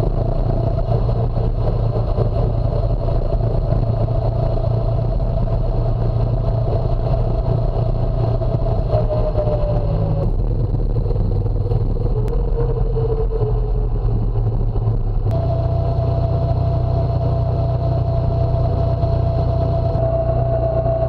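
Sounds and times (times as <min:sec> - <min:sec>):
small four-stroke engine running: 0:00.0 - 0:12.1, 0:13.7 - 0:21.0.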